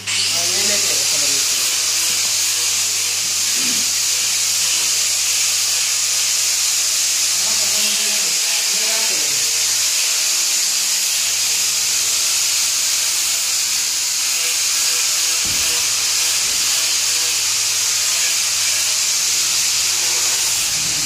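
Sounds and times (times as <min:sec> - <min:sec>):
steady loud hiss: 0:00.0 - 0:21.0.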